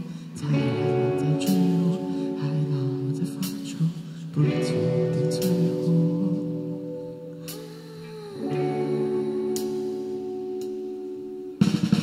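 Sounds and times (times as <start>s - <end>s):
electric guitars ringing chord: 0.0s - 12.0s.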